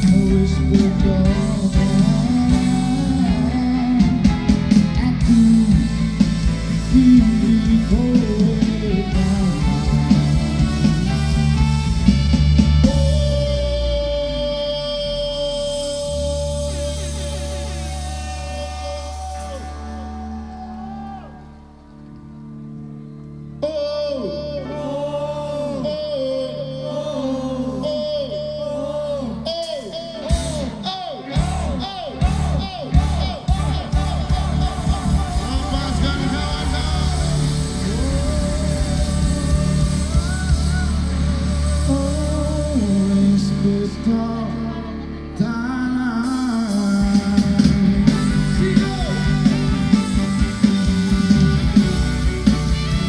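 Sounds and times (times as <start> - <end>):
live band playing: 0.0 - 53.0.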